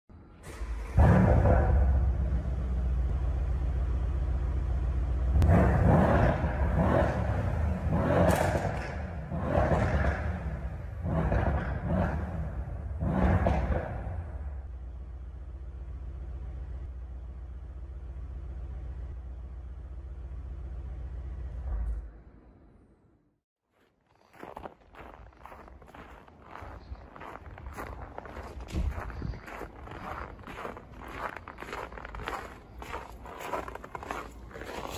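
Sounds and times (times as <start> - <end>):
car engine starting and idling: 0.1 - 23.1, 26.4 - 34.9
car engine revving: 0.4 - 17.0
footsteps walking: 23.7 - 34.9.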